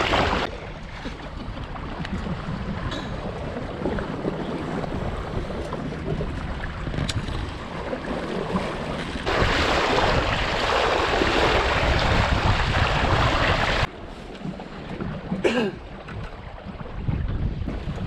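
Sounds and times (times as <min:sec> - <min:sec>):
bow wave splashing against hull: 0:00.0 - 0:18.0
wind buffeting microphone: 0:00.0 - 0:18.0.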